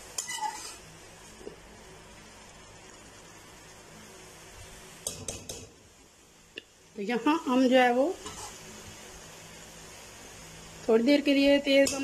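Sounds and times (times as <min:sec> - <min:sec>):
faint hiss from cooking pot: 0:00.0 - 0:12.0
metal spoon scraping metal pot: 0:00.2 - 0:00.8.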